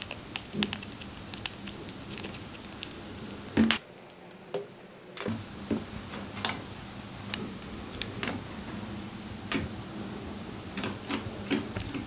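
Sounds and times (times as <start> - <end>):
chipmunk eating clicks: 0.0 - 4.4
faint steady hum: 0.0 - 12.0.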